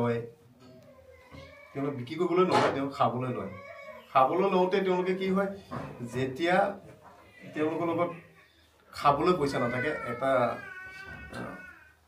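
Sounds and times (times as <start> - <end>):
man talking: 1.8 - 10.7.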